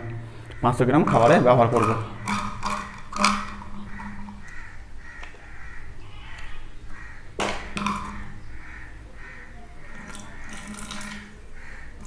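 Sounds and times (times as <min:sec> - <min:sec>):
harsh bird calls: 0:00.4 - 0:12.0.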